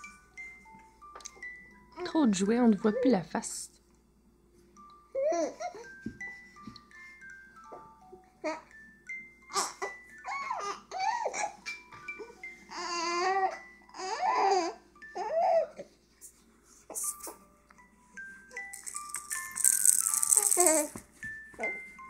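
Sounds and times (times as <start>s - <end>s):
toy playing chime melody: 0.0s - 3.4s, 4.8s - 15.9s, 17.0s - 22.0s
baby cooing and babbling: 5.2s - 5.9s, 9.5s - 11.7s, 12.7s - 15.9s, 20.4s - 21.0s
rattling: 18.7s - 20.9s.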